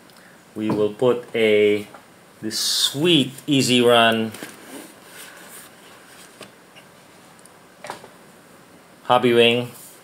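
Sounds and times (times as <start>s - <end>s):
cardboard boxes rustling: 4.2s - 6.5s.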